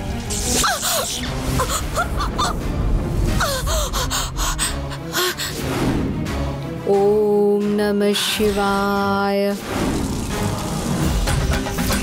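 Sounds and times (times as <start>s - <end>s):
low music drone: 0.0s - 12.0s
woman gasping: 3.4s - 5.7s.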